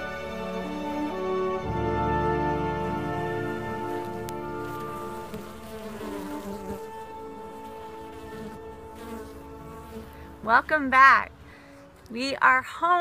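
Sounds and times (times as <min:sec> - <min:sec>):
orchestral music: 0:00.0 - 0:09.6
honeybees buzzing: 0:00.0 - 0:12.6.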